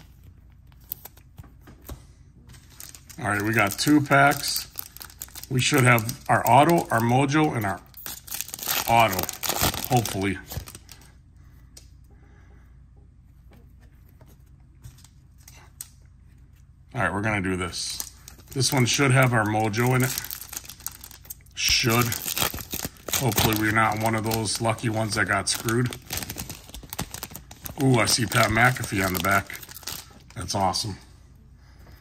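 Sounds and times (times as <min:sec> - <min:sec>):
low steady hum: 0:00.0 - 0:32.0
foil wrapper crinkling: 0:02.6 - 0:11.1, 0:17.7 - 0:30.8.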